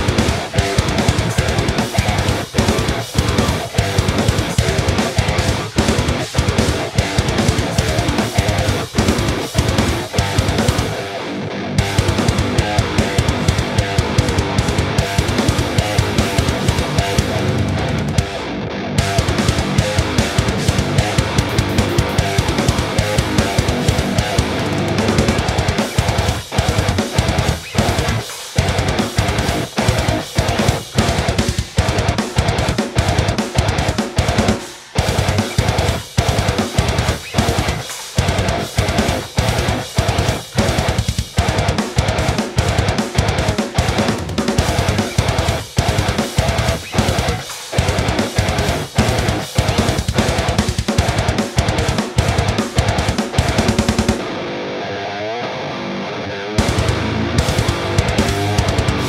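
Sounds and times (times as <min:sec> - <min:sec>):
drum kit: 0:00.0 - 0:54.5, 0:56.5 - 0:59.0
electric guitar chugging riffs: 0:00.0 - 0:59.0
held wavering guitar note: 0:54.2 - 0:59.0.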